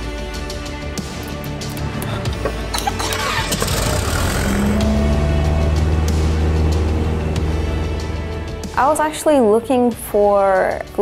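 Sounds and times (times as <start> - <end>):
background music: 0.0 - 11.0
propeller aircraft engine: 2.9 - 9.0.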